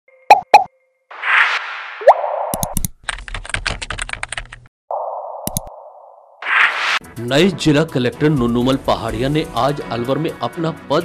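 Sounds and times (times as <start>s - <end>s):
rapid typing-like clicks: 2.6s - 4.7s
whoosh with rising zip: 6.4s - 7.0s.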